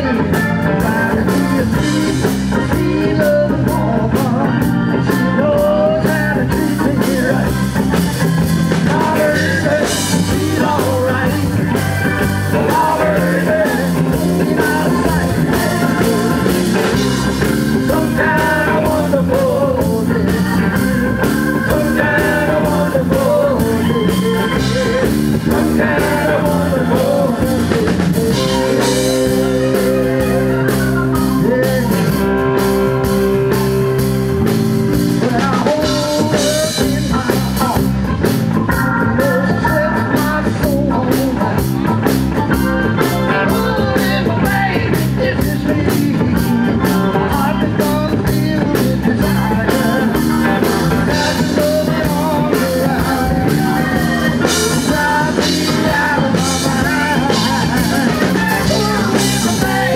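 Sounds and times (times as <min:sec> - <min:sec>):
live band playing: 0:00.0 - 0:59.9
steady drum beat: 0:00.0 - 0:59.9.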